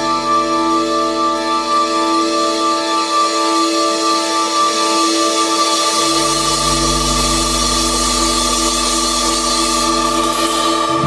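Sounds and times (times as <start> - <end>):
bass and drums: 6.0 - 11.0.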